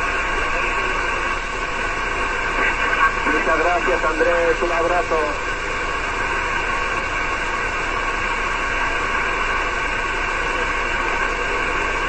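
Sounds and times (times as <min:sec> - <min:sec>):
radio receiver hiss: 0:00.0 - 0:12.0.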